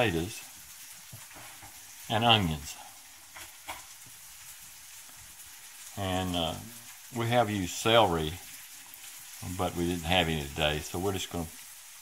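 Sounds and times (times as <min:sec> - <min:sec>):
meat sizzling in a skillet: 0:00.0 - 0:12.0.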